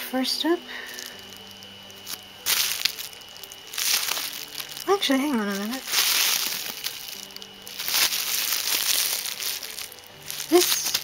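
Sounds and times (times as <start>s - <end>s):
bubble wrap and plastic bag crinkling: 0.7s - 11.0s.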